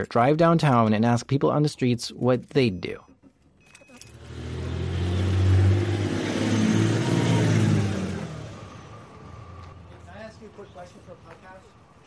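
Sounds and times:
car engine driving by: 4.1s - 10.8s.

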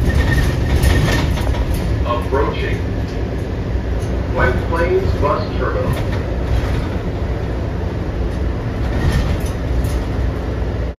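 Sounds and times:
bus engine rumble: 0.0s - 11.0s
road noise: 0.0s - 11.0s.

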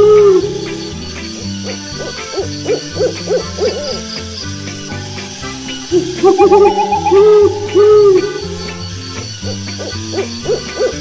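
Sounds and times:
owl hooting: 5.9s - 9.0s.

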